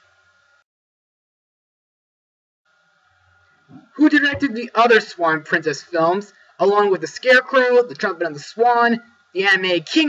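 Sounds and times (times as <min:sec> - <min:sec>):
faint room hiss and hum: 0:00.0 - 0:00.6, 0:02.7 - 0:10.0
man speaking: 0:04.0 - 0:10.0.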